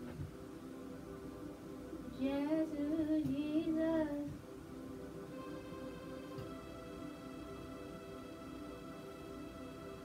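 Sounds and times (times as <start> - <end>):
keyboard chords: 0.0 - 10.0
woman singing gospel melody: 2.1 - 4.4.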